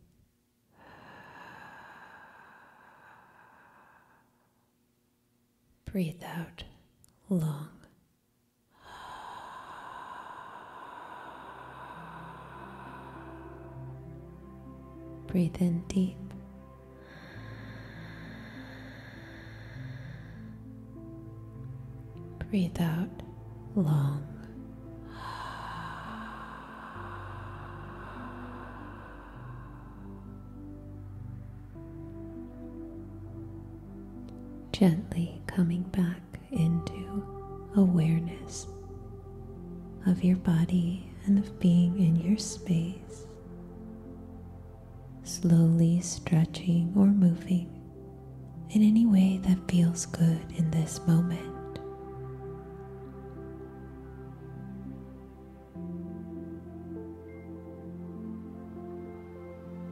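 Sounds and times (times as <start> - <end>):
woman whispering: 5.8 - 8.0, 34.7 - 38.7, 40.0 - 43.3, 45.2 - 47.8, 48.7 - 51.8
ambient drone: 8.8 - 59.9
low sustained tones: 8.8 - 59.9.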